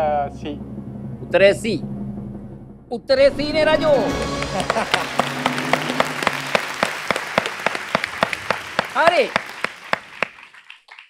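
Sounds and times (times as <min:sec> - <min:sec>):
audience applauding: 0:04.0 - 0:11.0
sharp hand claps: 0:04.1 - 0:11.0.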